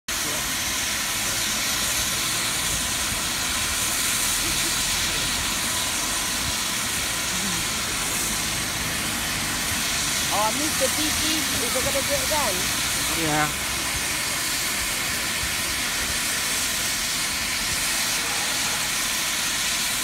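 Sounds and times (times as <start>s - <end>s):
steam hissing from safety valves: 0.1s - 20.0s.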